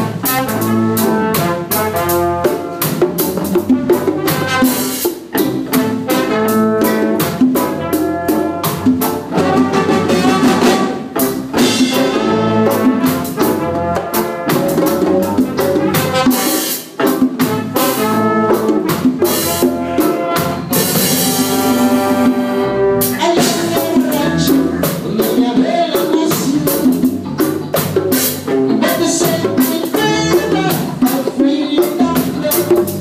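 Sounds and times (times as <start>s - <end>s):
bass guitar: 0.0s - 33.0s
drum kit: 0.0s - 33.0s
electric guitar: 0.0s - 33.0s.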